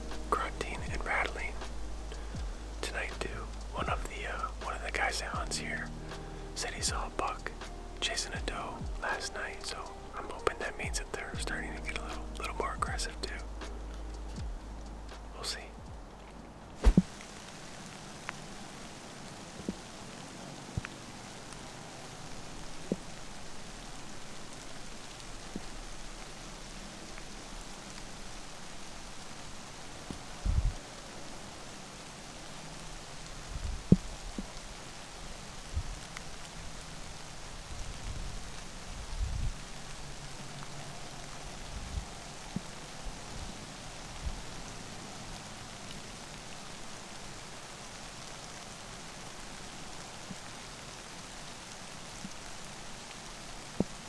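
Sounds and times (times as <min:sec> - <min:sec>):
dull low bumps: 0:00.0 - 0:04.6, 0:05.3 - 0:06.2, 0:08.4 - 0:09.0, 0:10.8 - 0:17.1, 0:30.4 - 0:30.8, 0:33.5 - 0:34.6, 0:35.7 - 0:36.1, 0:37.6 - 0:39.8, 0:41.5 - 0:44.5
light rain pattering: 0:00.0 - 0:54.0.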